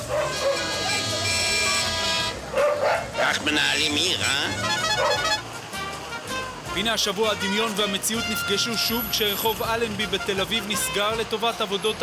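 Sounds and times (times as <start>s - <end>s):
voices: 0.0s - 5.7s
old film music: 3.3s - 12.0s.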